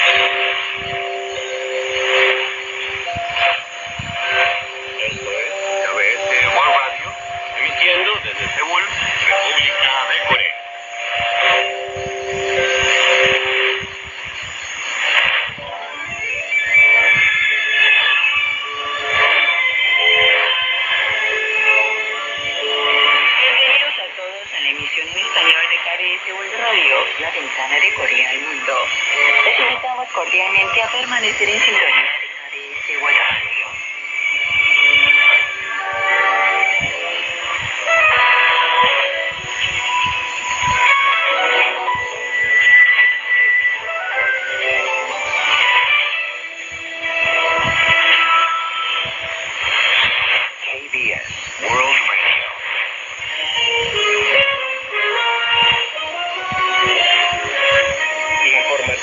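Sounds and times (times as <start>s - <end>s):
voice over shortwave radio: 2.0s - 14.0s, 15.5s - 16.4s, 23.0s - 33.9s, 49.0s - 52.8s, 56.3s - 59.0s
faint high-pitched whistle: 15.6s - 23.6s.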